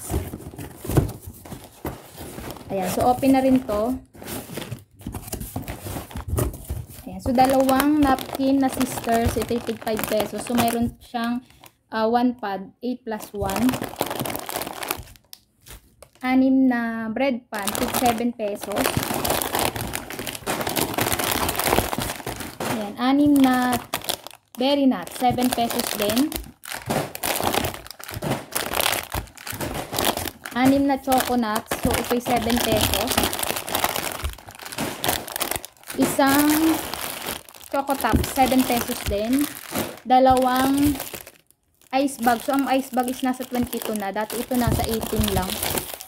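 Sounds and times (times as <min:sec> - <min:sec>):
hand rummaging in cardboard box: 0:00.0 - 0:11.0, 0:13.4 - 0:15.9, 0:17.6 - 0:24.4, 0:25.1 - 0:41.4, 0:42.0 - 0:46.0
plastic packages crinkling: 0:00.0 - 0:11.8, 0:13.2 - 0:16.3, 0:17.6 - 0:46.0.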